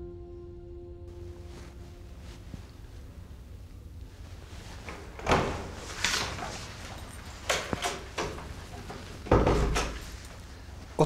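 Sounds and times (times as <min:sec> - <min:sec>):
door opening and shutting: 0:04.7 - 0:10.4.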